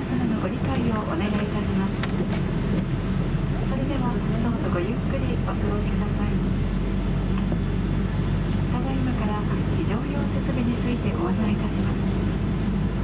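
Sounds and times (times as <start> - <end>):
airliner cabin hum: 0.0 - 13.0.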